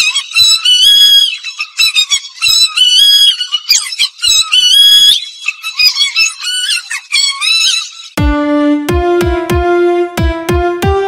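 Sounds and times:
faint beats: 8.2s - 11.0s
film song with high melody: 8.2s - 11.0s.

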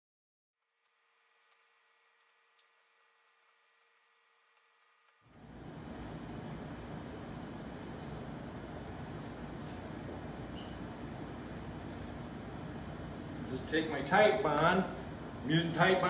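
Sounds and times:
faint low hum: 0.6s - 16.0s.

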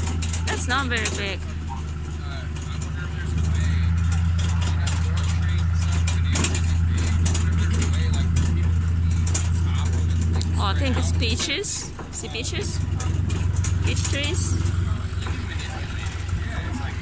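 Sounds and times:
tractor engine drone: 0.0s - 17.0s.

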